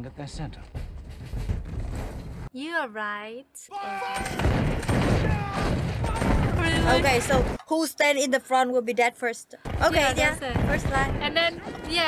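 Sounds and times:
musket fire rattle and booms: 4.4s - 7.6s, 9.7s - 12.0s.

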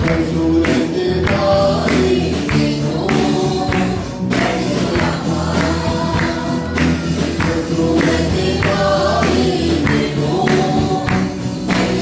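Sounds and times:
band with steady beat: 0.0s - 12.0s
person singing: 0.0s - 12.0s.

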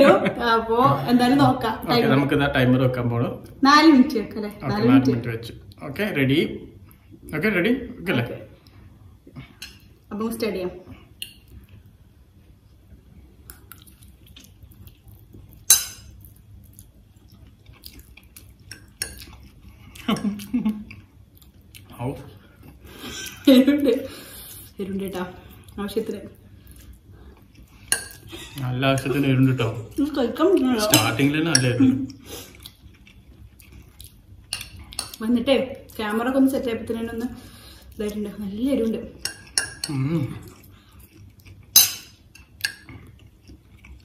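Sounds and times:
forks clinking on plates: 39.2s - 40.0s, 41.8s - 42.9s.

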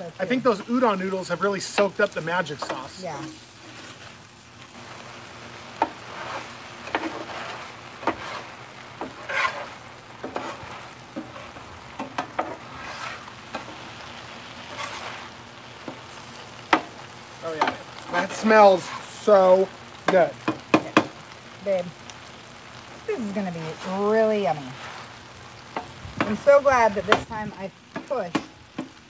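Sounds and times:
food sizzling: 0.0s - 29.0s
metal spatula scraping griddle: 2.6s - 4.2s, 5.8s - 16.4s.

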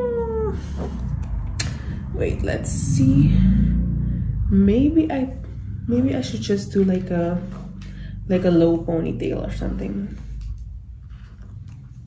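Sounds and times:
woman humming hesitantly: 0.0s - 0.8s.

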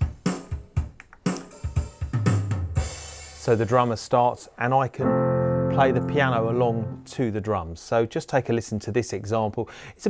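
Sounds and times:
drum machine beat: 0.0s - 3.3s.

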